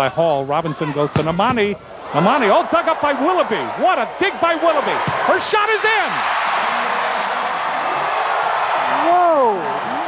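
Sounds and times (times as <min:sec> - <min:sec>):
arena crowd cheering: 0:02.0 - 0:10.0.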